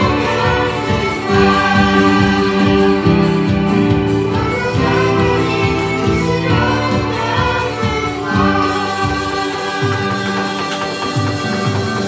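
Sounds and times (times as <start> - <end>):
band accompaniment: 0.0 - 12.0
children singing into microphones: 0.0 - 12.0
steady drum beat: 0.0 - 12.0.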